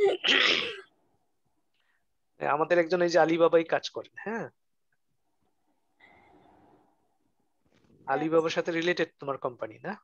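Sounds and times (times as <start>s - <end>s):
person sneezing: 0.0s - 0.9s.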